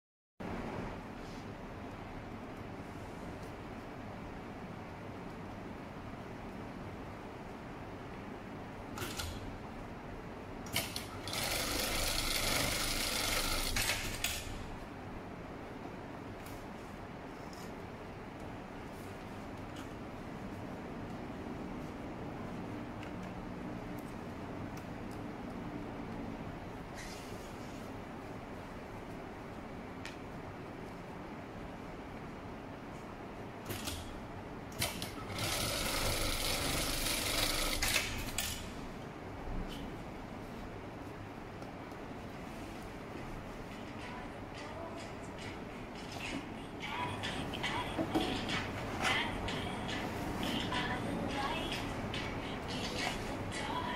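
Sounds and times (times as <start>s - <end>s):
sewing machine running: 10.8s - 14.6s, 34.8s - 38.4s.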